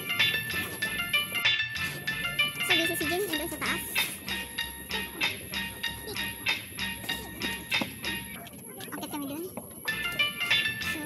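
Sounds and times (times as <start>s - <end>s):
footsteps on metal stairs: 7.0s - 10.3s.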